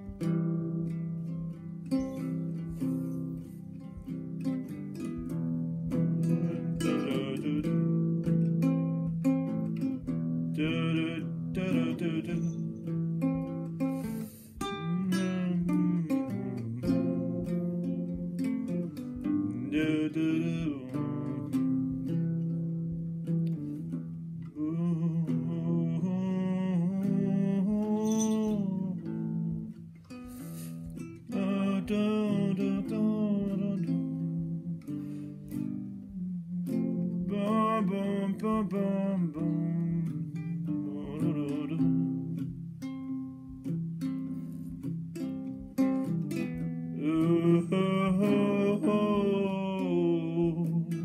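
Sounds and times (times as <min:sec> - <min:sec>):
acoustic guitar strumming: 0:00.0 - 0:51.0
man humming and singing: 0:05.9 - 0:09.7, 0:10.5 - 0:22.2, 0:23.6 - 0:42.6, 0:47.0 - 0:51.0.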